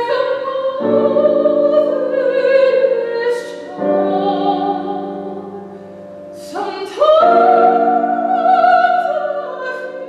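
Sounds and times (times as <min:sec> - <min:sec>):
grand piano accompaniment: 0:00.0 - 0:10.0
soprano singing: 0:00.0 - 0:10.0.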